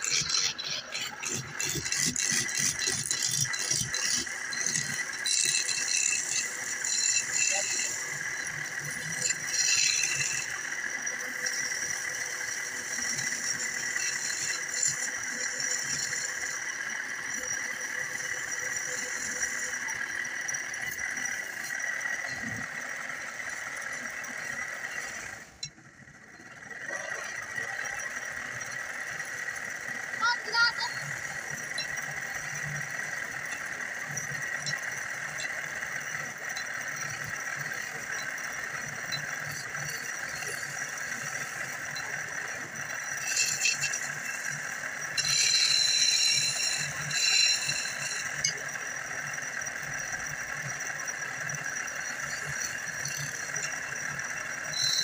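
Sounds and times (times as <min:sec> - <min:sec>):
chisel scraping on wood lathe: 0:00.0 - 0:25.6, 0:26.8 - 0:55.0
lathe high whine: 0:00.0 - 0:55.0.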